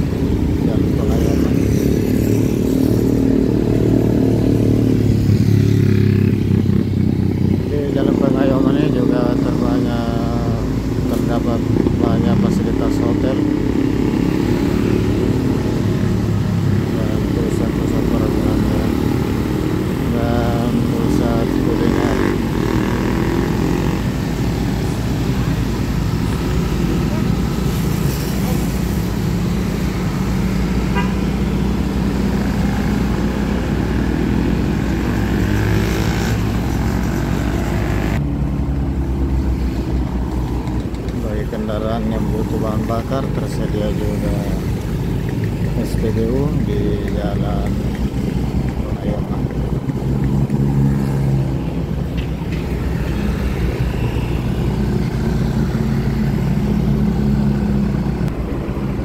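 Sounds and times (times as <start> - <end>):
city traffic noise: 0.0 - 59.0
motorcycle engines running: 0.0 - 59.0.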